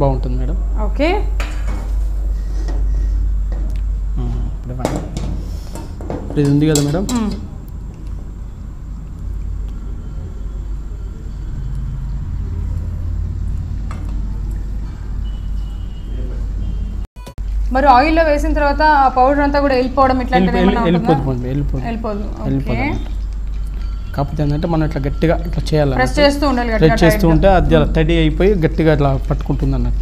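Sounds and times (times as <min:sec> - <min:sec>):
person speaking: 0:20.3 - 0:23.1, 0:24.3 - 0:29.8
low hum: 0:26.1 - 0:30.0.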